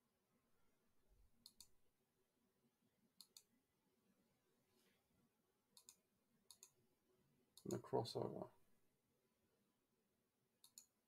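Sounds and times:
computer mouse clicks: 0:01.4 - 0:01.8, 0:03.2 - 0:03.5, 0:05.8 - 0:06.8, 0:10.6 - 0:11.0.

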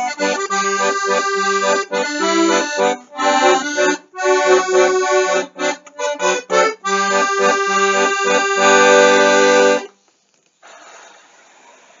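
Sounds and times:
air hissing from accordion bellows: 0:00.0 - 0:10.0.

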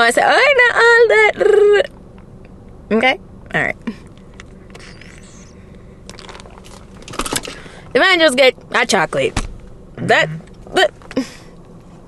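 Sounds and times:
car cabin hum: 0:00.0 - 0:12.0
brief squeak: 0:04.7 - 0:05.6.

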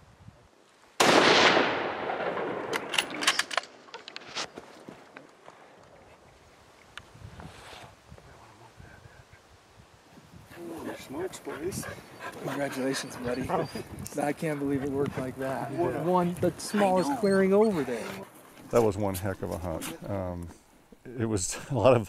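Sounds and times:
rifle shot echoing: 0:01.0 - 0:03.7.

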